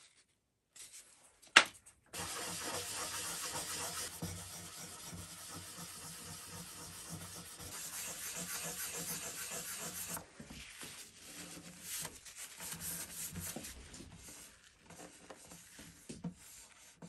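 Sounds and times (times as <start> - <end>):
sandpaper scrubbing on wood: 2.2 - 10.2.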